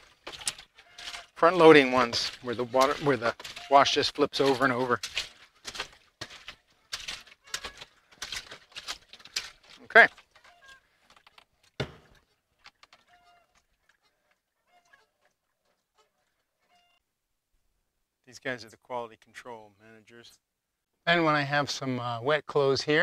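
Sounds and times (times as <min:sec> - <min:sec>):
water and clothes sloshing: 0:00.0 - 0:17.0
thump: 0:11.8 - 0:12.1.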